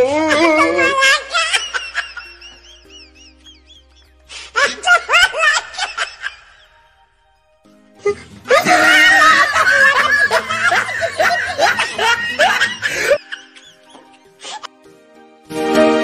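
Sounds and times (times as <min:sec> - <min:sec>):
dense overlapping laughter: 0:00.0 - 0:06.8, 0:08.0 - 0:14.7
music: 0:00.0 - 0:16.0.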